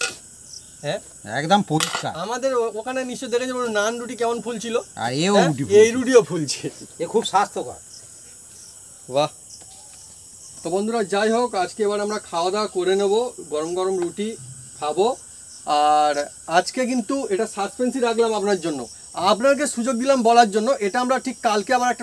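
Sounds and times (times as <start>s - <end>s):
crickets chirring: 0.0s - 22.0s
man talking: 0.8s - 7.8s, 9.1s - 9.4s, 10.6s - 22.0s.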